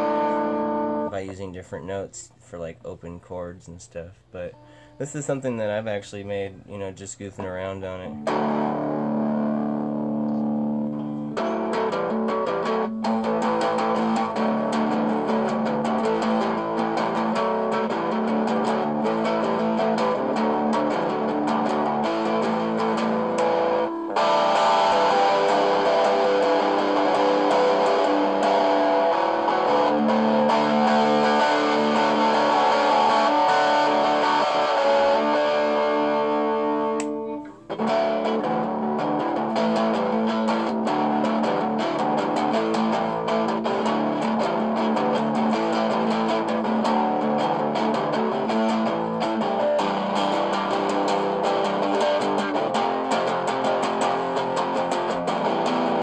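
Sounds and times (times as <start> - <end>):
electric guitar ringing chords: 0.0 - 1.2, 4.4 - 5.8, 7.4 - 56.0.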